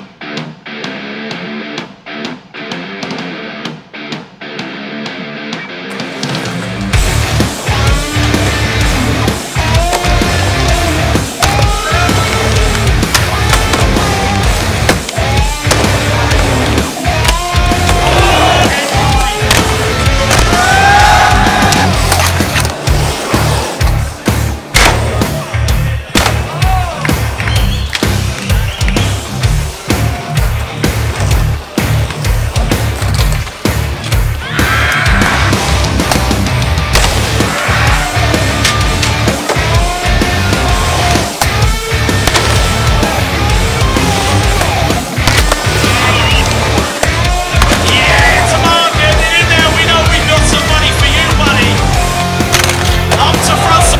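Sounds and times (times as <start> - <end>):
music with heavy beat: 0.0 - 53.9
skateboard wheels rolling on concrete: 6.2 - 24.8, 27.0 - 53.9
skateboard clacks: 21.6 - 22.9, 31.0 - 34.2, 44.0 - 48.0, 52.1 - 53.4.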